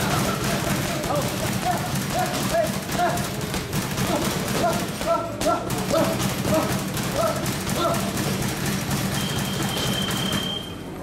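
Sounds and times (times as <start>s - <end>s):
punches thudding on punching bags: 0.0s - 10.6s.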